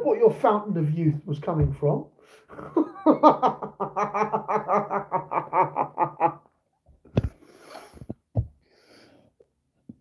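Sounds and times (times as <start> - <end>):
man laughing: 2.5 - 6.5.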